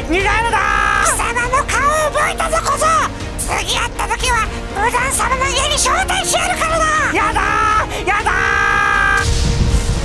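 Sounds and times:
music: 0:00.0 - 0:10.0
man yelling: 0:05.8 - 0:09.2.

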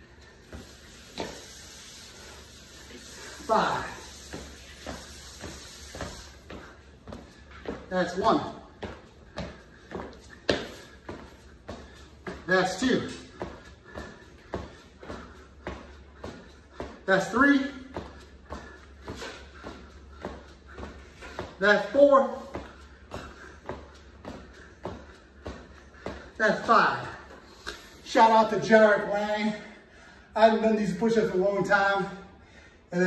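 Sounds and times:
sneakers tapping on hardwood floor: 0:00.4 - 0:01.6, 0:03.4 - 0:27.4.

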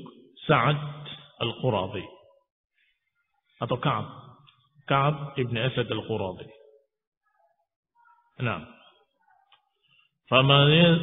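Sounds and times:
man speaking: 0:00.0 - 0:02.3, 0:03.6 - 0:06.7, 0:08.4 - 0:09.0, 0:10.3 - 0:11.0.

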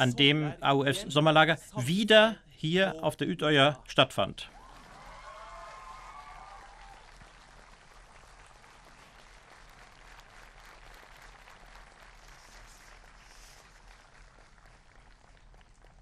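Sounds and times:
crowd clapping: 0:04.5 - 0:16.0.

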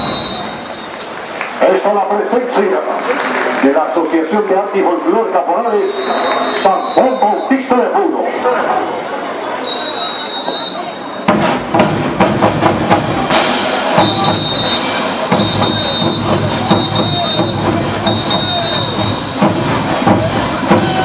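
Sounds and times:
high whistle blasts: 0:00.0 - 0:01.0, 0:05.6 - 0:07.6, 0:09.6 - 0:11.3, 0:14.0 - 0:19.4
brass band and drums: 0:00.0 - 0:01.1, 0:09.7 - 0:21.0.

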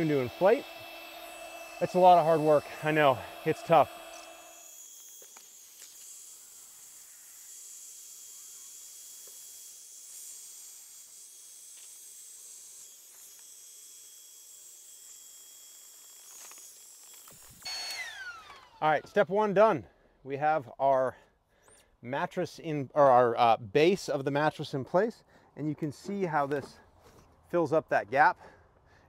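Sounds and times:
electric air pump hissing: 0:00.0 - 0:07.4.

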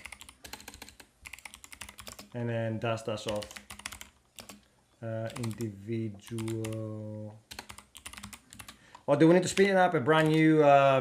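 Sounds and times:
typing on computer keyboard: 0:00.0 - 0:02.3, 0:03.2 - 0:04.6, 0:05.2 - 0:05.7, 0:06.3 - 0:06.9, 0:07.5 - 0:08.8, 0:09.4 - 0:10.5.

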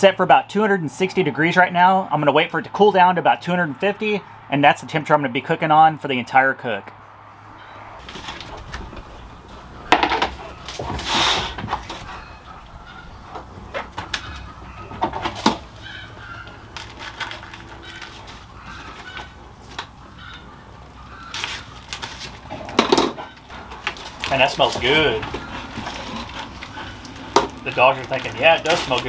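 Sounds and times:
meat handling clicks and knocks: 0:21.3 - 0:29.0.

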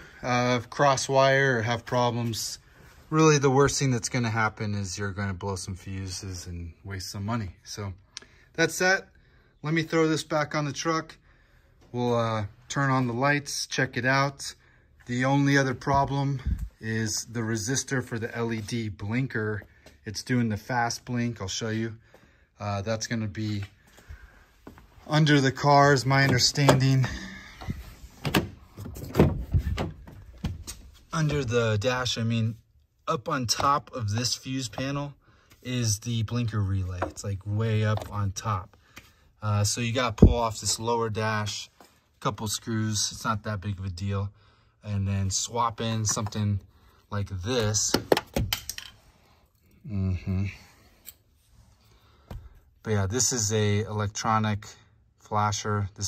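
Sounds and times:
man speaking: 0:00.0 - 0:08.0, 0:11.9 - 0:22.0, 0:22.6 - 0:23.8, 0:25.0 - 0:27.6, 0:31.1 - 0:38.8, 0:39.4 - 0:48.1, 0:49.8 - 0:50.8, 0:52.8 - 0:56.0.

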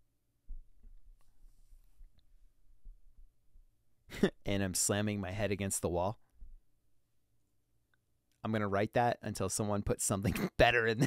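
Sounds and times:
soft low thump: 0:00.5 - 0:01.1
man speaking: 0:04.2 - 0:06.2, 0:08.4 - 0:11.0.

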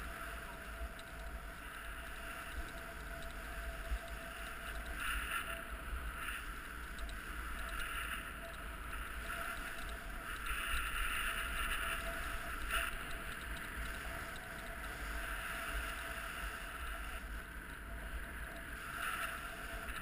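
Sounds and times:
low wind rumble on microphone: 0:00.0 - 0:20.0.

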